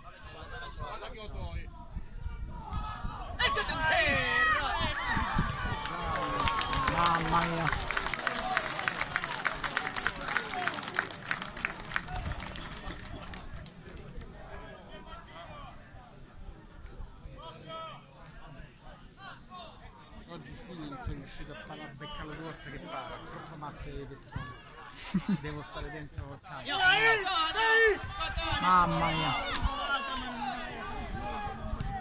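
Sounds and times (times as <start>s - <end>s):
people shouting: 2.6s - 7.7s, 26.7s - 32.0s.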